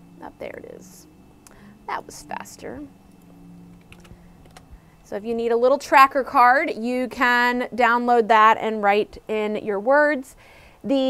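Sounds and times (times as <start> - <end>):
low steady hum: 0.0 - 11.0
computer keyboard clicks: 3.8 - 4.7.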